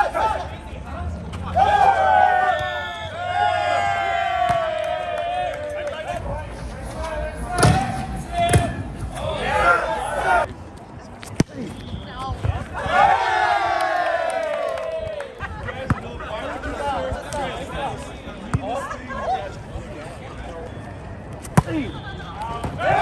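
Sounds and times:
players shouting: 0.0s - 6.4s, 7.0s - 10.5s, 12.1s - 19.6s, 21.6s - 23.0s.

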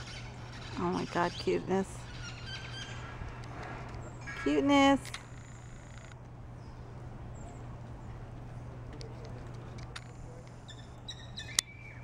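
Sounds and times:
small bird chirping: 10.6s - 12.0s.

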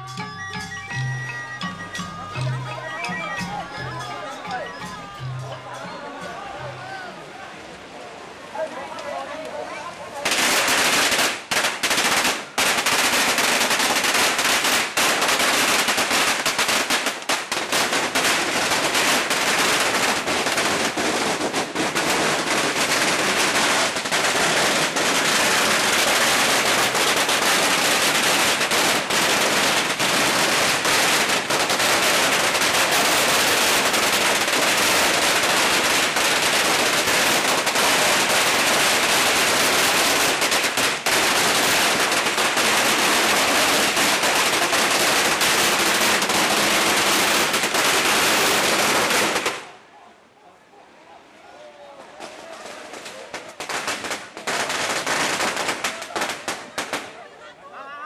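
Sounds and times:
firecrackers crackling: 0.0s - 5.9s, 9.0s - 49.8s, 52.0s - 57.4s.

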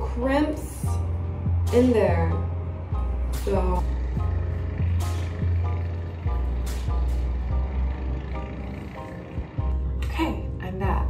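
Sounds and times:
deep steady bass line: 0.0s - 11.0s.

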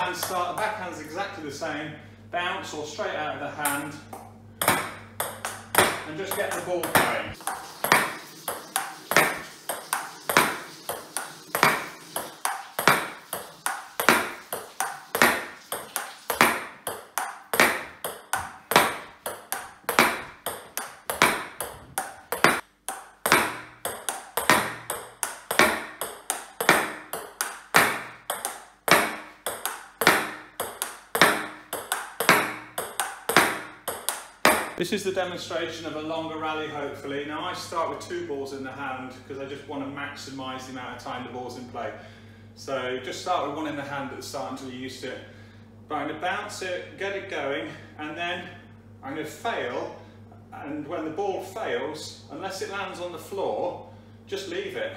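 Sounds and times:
table tennis ball clicks: 3.6s - 34.8s.

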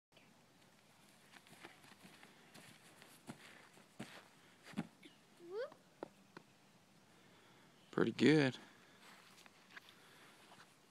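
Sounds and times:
child's footfalls on grass: 0.6s - 5.0s.

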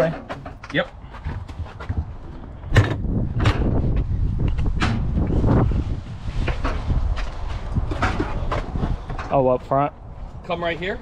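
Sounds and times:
footsteps on asphalt: 0.8s - 2.6s
wind rumbling on microphone: 1.0s - 11.0s.

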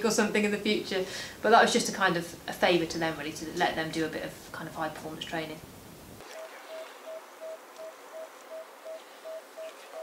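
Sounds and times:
faint steady hiss: 0.0s - 10.0s
short electronic beeps: 6.4s - 10.0s.

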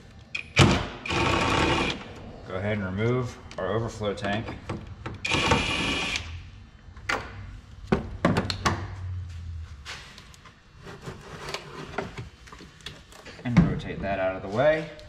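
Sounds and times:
power tool whining: 0.6s - 2.1s, 5.2s - 6.3s.

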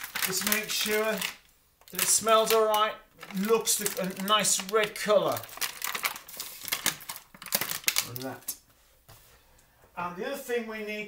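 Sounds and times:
plastic packaging crinkling: 0.0s - 8.6s.

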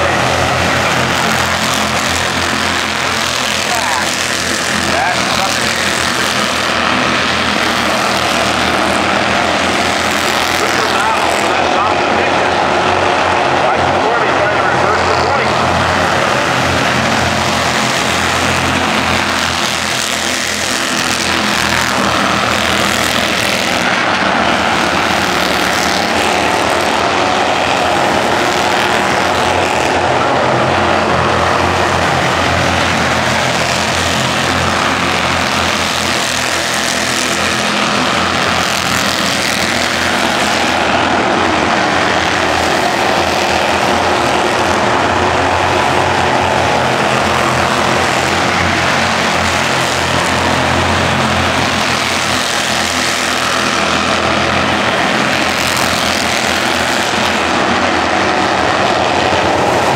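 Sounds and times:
small race car engines buzzing: 0.0s - 59.9s.

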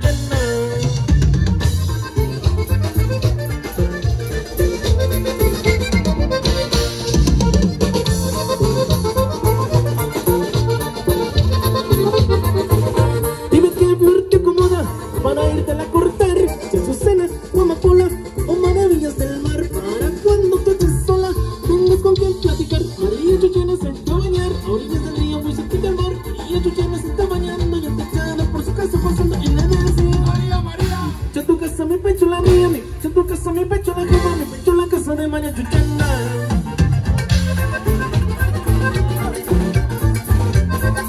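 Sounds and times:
accordion melody: 0.0s - 41.0s
drum and bass dance beat: 0.0s - 41.0s.

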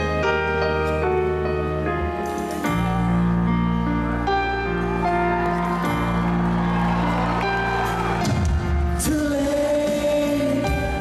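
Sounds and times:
held keyboard chords: 0.0s - 11.0s
person singing: 8.7s - 11.0s.

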